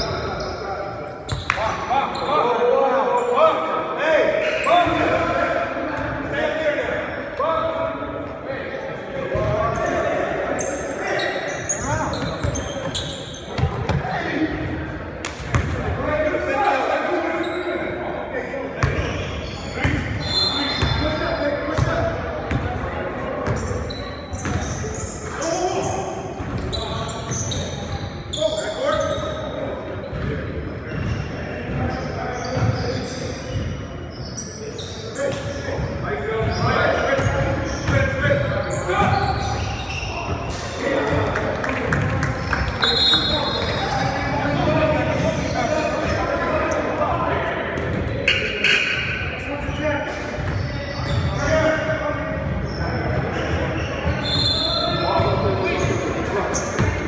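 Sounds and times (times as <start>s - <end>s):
sneakers squeaking: 0.0s - 3.7s, 9.2s - 18.1s, 18.8s - 57.0s
basketball bouncing: 15.4s - 15.8s.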